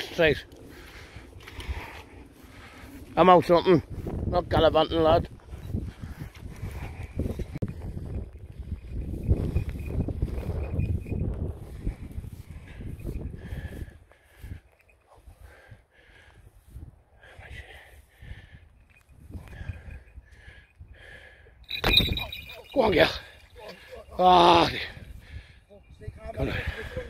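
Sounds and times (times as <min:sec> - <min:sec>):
wind rumbling on microphone: 0:00.0 - 0:23.6, 0:24.2 - 0:27.0
footsteps rustling through grass: 0:11.3 - 0:14.5.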